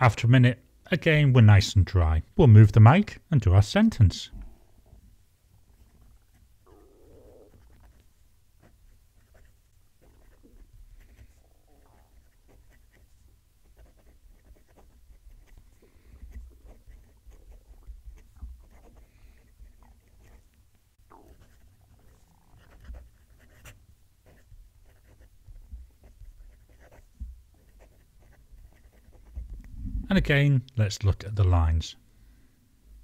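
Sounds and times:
fountain pen scratching on paper: 0:07.5 - 0:20.5, 0:21.3 - 0:29.6.

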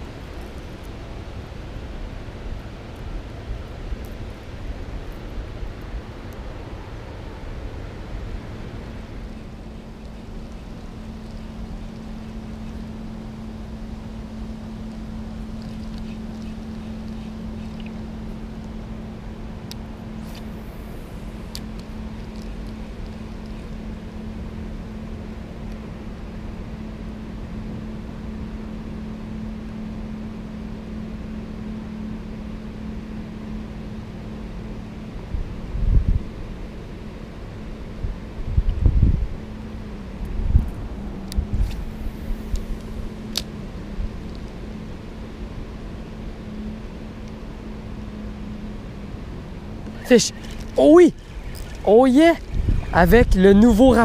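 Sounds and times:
constant low hum: 0:00.0 - 0:54.0.

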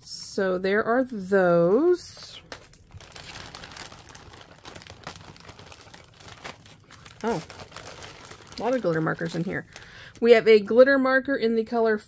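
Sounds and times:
packaging crinkling: 0:02.2 - 0:10.7
small clicks and crackles: 0:02.4 - 0:10.2.

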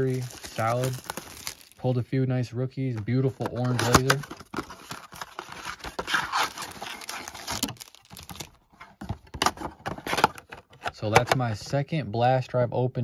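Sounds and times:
rustling handling: 0:00.0 - 0:01.9, 0:02.8 - 0:10.6.

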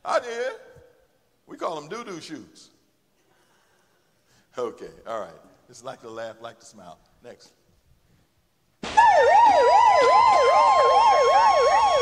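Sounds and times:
emergency siren wailing: 0:09.0 - 0:12.0.

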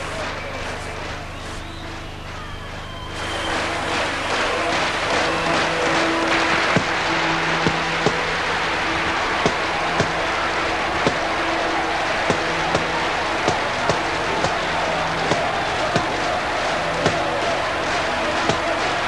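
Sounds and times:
crowd cheering: 0:00.0 - 0:19.0.

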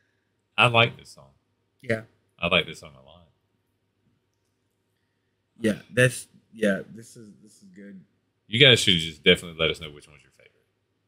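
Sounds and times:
man speaking: 0:00.6 - 0:01.3, 0:01.9 - 0:03.2, 0:05.6 - 0:10.4.

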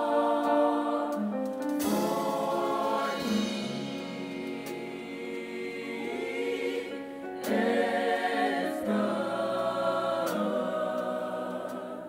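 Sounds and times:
gospel choir singing in harmony: 0:00.0 - 0:12.0.

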